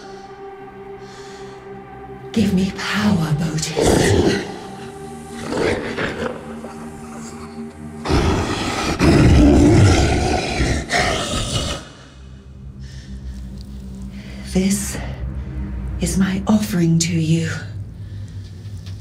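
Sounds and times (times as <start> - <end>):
low drone of film score: 0.0 - 19.0.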